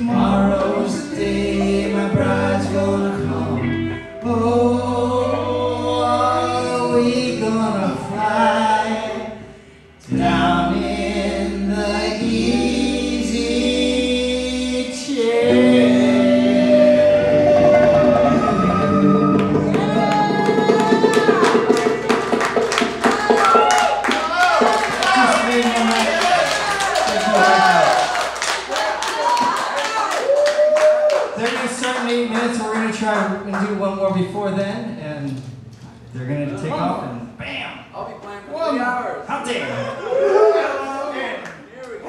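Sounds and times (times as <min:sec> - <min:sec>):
electric bass: 0:00.0 - 0:23.1
electric guitar: 0:00.0 - 0:24.8.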